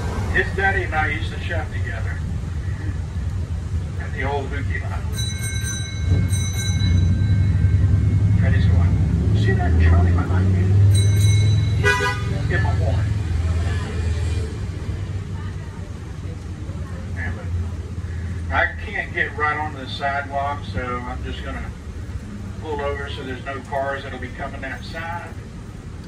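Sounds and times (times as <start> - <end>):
trolley engine rumbling: 0.0 - 26.0
bell ringing in quick strikes: 5.1 - 8.4, 10.9 - 12.2
brief horn toot: 11.8 - 12.4.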